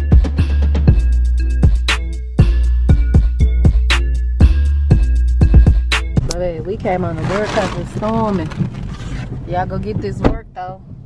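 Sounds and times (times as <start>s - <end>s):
electronic background music: 0.0s - 8.0s
car cabin rumble: 4.9s - 11.0s
woman talking: 6.3s - 8.6s, 9.5s - 10.9s.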